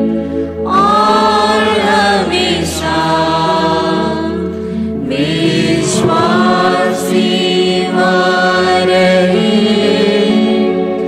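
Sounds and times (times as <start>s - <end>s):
choir singing a hymn: 0.0s - 11.0s
low accompaniment: 0.0s - 11.0s.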